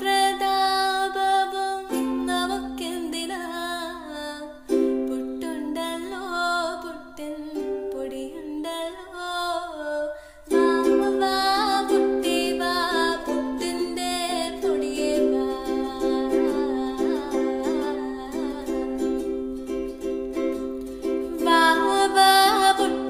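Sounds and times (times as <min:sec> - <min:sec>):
ukulele strumming chords: 0:00.0 - 0:09.6, 0:10.5 - 0:23.0.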